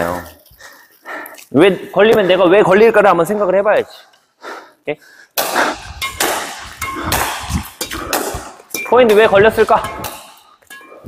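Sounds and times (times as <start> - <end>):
rackets hitting shuttlecocks: 5.4 - 11.0.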